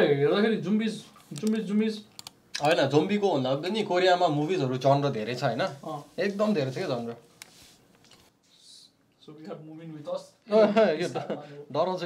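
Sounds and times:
man speaking: 0.0 - 7.3
computer mouse clicks: 1.3 - 2.8.

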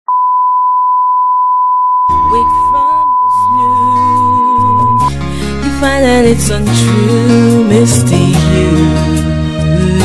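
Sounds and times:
steady sine test tone: 0.1 - 5.1.

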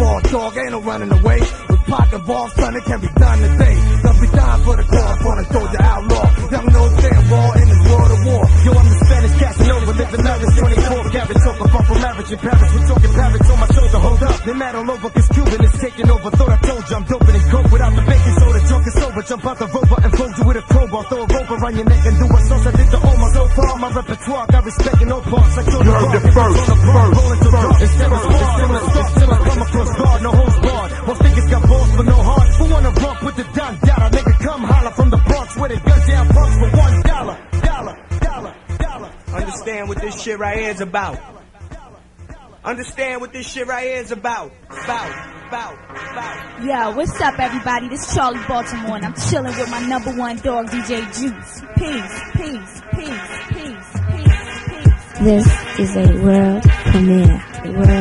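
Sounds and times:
rapping over a beat: 0.0 - 58.0
heavy repeating bass: 3.0 - 14.5, 15.2 - 19.0, 21.8 - 40.2, 46.9 - 51.0, 54.0 - 58.0.

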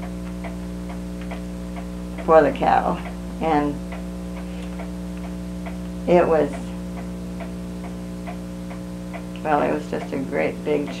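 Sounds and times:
pendulum clock ticking: 0.0 - 11.0
steady electrical hum: 0.0 - 11.0.

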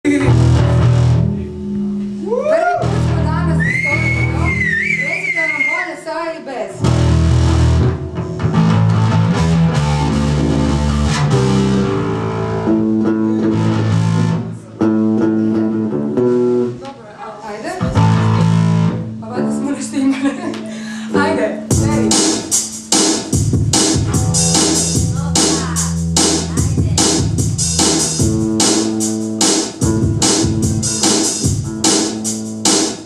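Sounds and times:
electric bass guitars playing: 0.0 - 5.4, 6.8 - 16.8, 17.7 - 33.0
high wavering tone: 24.1 - 26.1.

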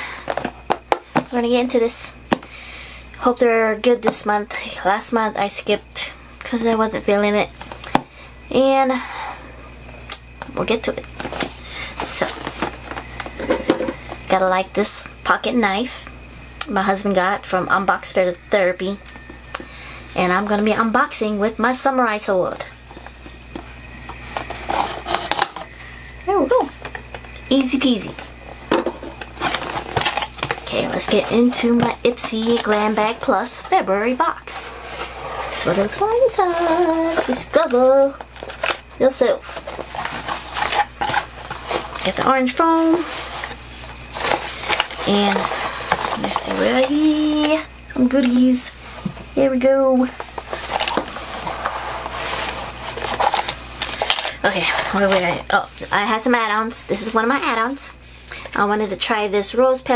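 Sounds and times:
handling rustles: 34.6 - 47.6, 50.0 - 55.5.

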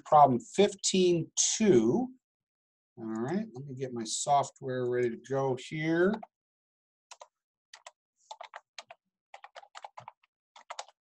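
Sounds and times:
typing on a computer keyboard: 7.1 - 11.0.

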